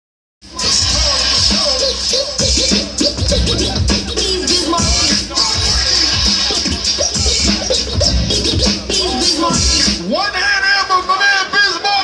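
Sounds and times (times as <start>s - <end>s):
record scratching: 0.4s - 10.1s
hip-hop beat over loudspeakers: 0.4s - 12.0s.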